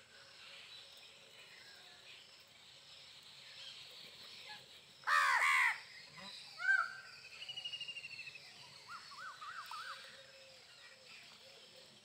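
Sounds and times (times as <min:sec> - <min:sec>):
crows cawing: 0:05.1 - 0:05.8.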